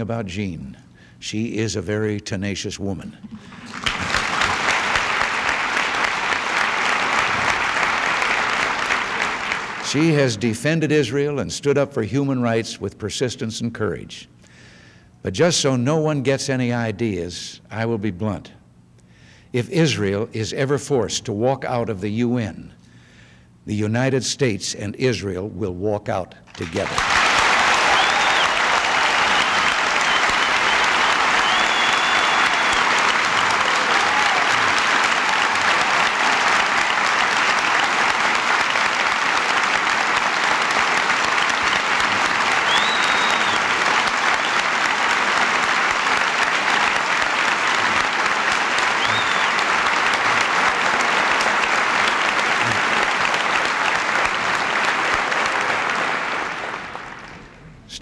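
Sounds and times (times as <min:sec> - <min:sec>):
large audience applauding: 0:03.4 - 0:10.4, 0:26.5 - 0:57.7.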